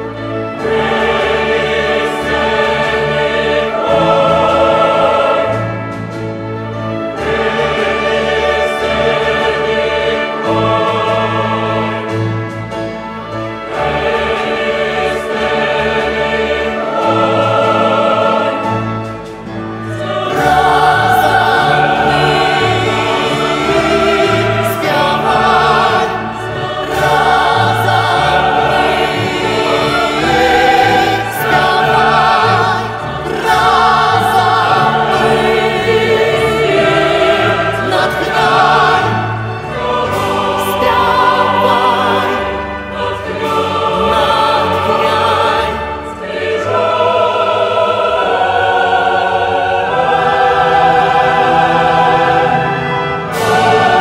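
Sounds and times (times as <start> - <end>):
choir singing solemn anthem: 0.0 - 54.0
symphony orchestra: 0.0 - 54.0.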